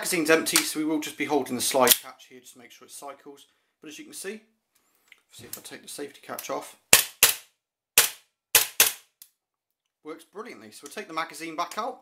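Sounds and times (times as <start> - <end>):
airsoft pistol shots: 6.9 - 9.1.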